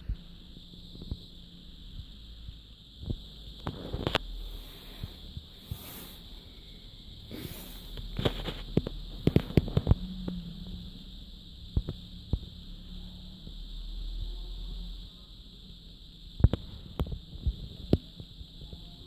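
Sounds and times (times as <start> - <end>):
faint high-pitched whine: 0.0 - 19.0.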